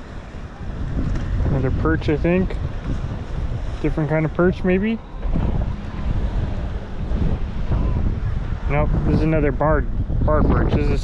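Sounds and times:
ocean noise: 0:00.0 - 0:11.0
wind buffeting microphone: 0:00.0 - 0:11.0.

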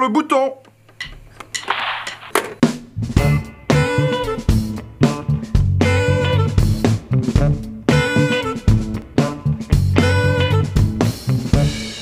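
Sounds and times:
band noise: 0:01.6 - 0:12.0.

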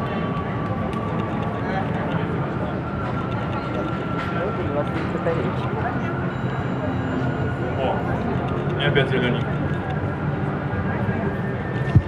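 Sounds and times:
crowd chatter: 0:00.0 - 0:12.0
steady background din: 0:00.0 - 0:12.0.

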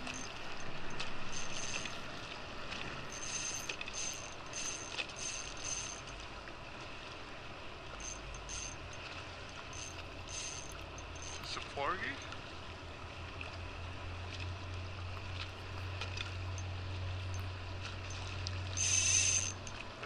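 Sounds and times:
fishing reel whirring: 0:00.0 - 0:06.2, 0:08.0 - 0:11.6, 0:17.3 - 0:19.8
water lapping: 0:00.0 - 0:20.0
wind: 0:00.0 - 0:20.0.

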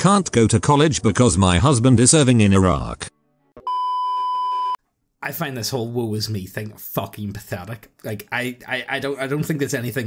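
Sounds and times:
high electronic beep: 0:03.6 - 0:04.8.

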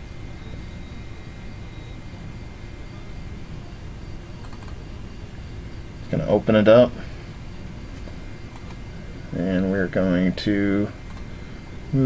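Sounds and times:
faint high whine: 0:00.0 - 0:12.0
room hum and hiss: 0:00.0 - 0:12.0
computer mouse clicks: 0:04.4 - 0:04.8, 0:08.0 - 0:08.8, 0:11.1 - 0:11.3.

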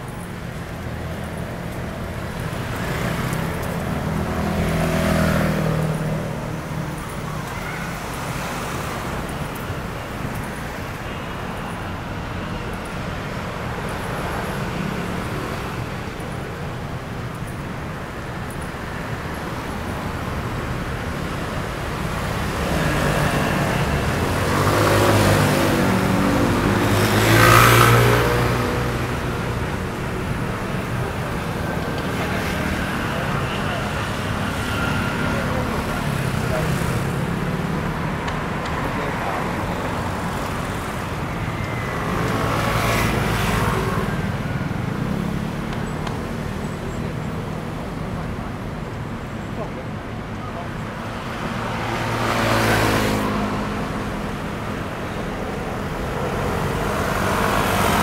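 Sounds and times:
cars and scooters passing: 0:00.0 - 0:58.0.

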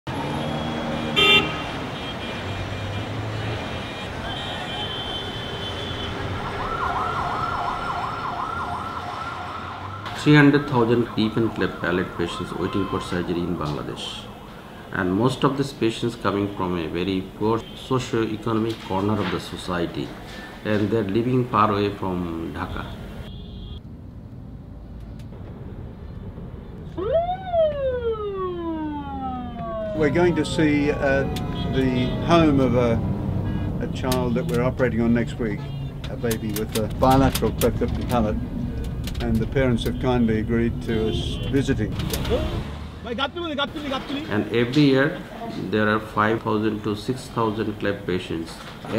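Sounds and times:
city street traffic: 0:00.0 - 0:48.9
vehicle horn blast: 0:01.0 - 0:06.2, 0:23.3 - 0:23.8, 0:40.9 - 0:41.6
siren sweeping up and down: 0:06.0 - 0:14.3, 0:27.0 - 0:33.4
siren winding up and down: 0:27.0 - 0:32.8.

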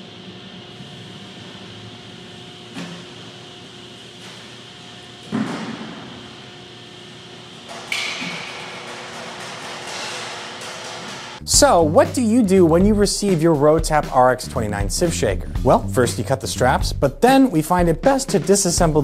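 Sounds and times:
steady background hum: 0:00.0 - 0:19.0
loud ringing metal clunk: 0:07.7 - 0:11.4
pallet jack clanking on concrete: 0:07.7 - 0:11.4.

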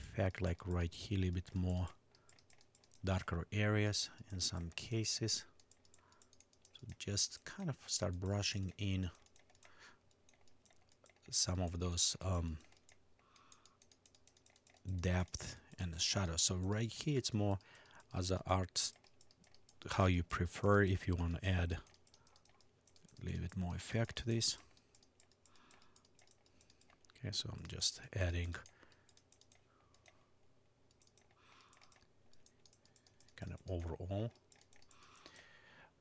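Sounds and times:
low room hum: 0:00.0 - 0:36.0
faint computer clicking: 0:00.4 - 0:30.2, 0:30.8 - 0:35.7
computer input clicks: 0:30.9 - 0:35.5.

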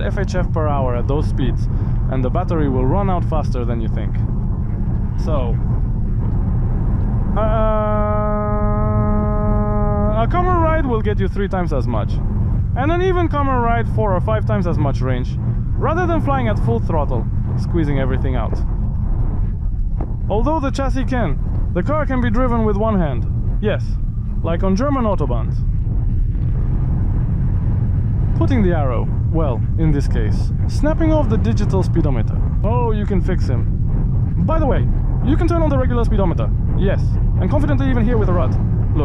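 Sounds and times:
car cabin road and wind noise: 0:00.0 - 0:39.0
man saying uhh: 0:07.4 - 0:10.7.

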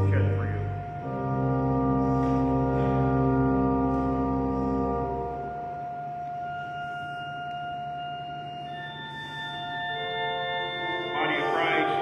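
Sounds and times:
church organ: 0:00.0 - 0:12.0.

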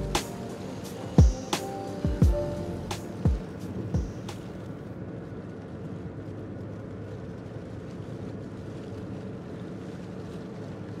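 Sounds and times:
road noise inside moving car: 0:00.0 - 0:11.0.

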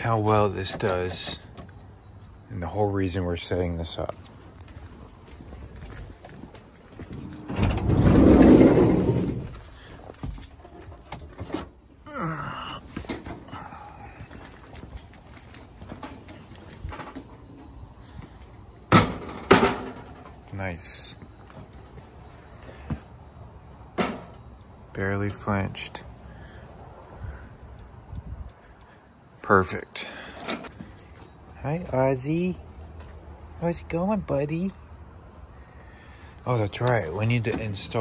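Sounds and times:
loud drawn-out rumble: 0:07.1 - 0:09.8
handling sounds: 0:12.8 - 0:20.6.

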